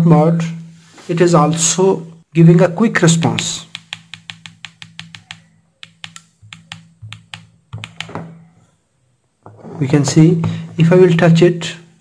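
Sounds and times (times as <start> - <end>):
plastic buttons clicking: 3.3 - 8.2.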